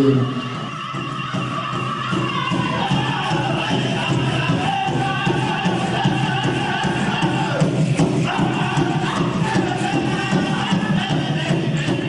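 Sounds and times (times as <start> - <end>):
chanted singing: 0.0 - 12.0
steady drum beat: 0.0 - 12.0.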